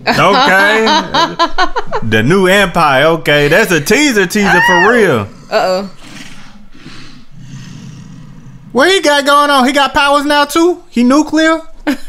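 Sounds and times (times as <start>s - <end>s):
monster low rumbling growl: 7.4s - 8.7s.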